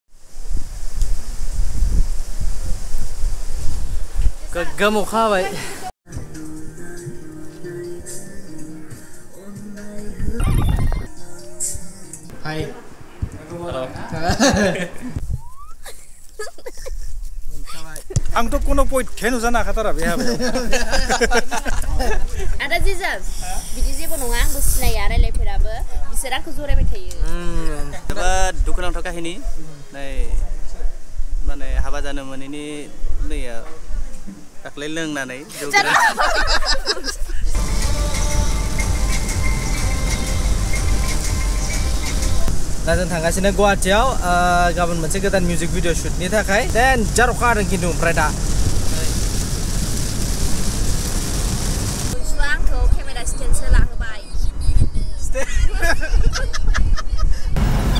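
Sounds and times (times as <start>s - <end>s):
steady hiss: 0.1s - 5.9s, 18.4s - 25.3s, 34.4s - 52.2s
person speaking: 35.5s - 37.6s
constant low rumble: 37.6s - 53.8s.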